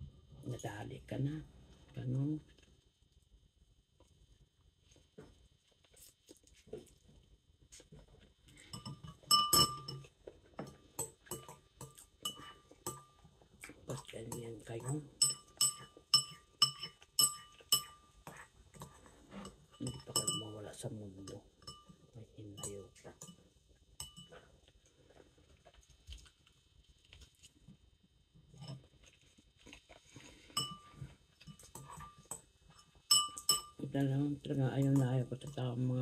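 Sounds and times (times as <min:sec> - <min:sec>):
faint chewing: 0:04.8 - 0:20.2, 0:23.0 - 0:33.5
fork and spoon clinking: 0:08.7 - 0:13.2, 0:14.3 - 0:20.6, 0:21.2 - 0:22.0, 0:22.6 - 0:23.4, 0:24.0 - 0:24.4, 0:30.5 - 0:33.8.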